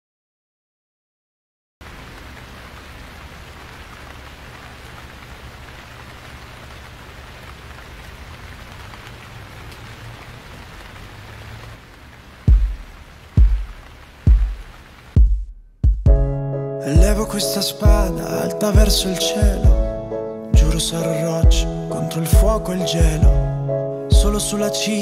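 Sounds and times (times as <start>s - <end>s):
rain-like hiss: 1.8s - 15.2s
deep drum booms: 12.5s - 20.0s, 20.6s - 21.8s, 22.4s - 24.4s.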